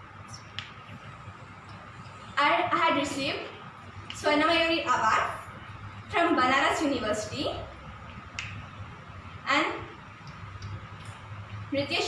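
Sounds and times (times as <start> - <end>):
faint low hum: 0.0 - 12.0
woman speaking: 2.4 - 7.7, 9.5 - 10.0, 11.7 - 12.0.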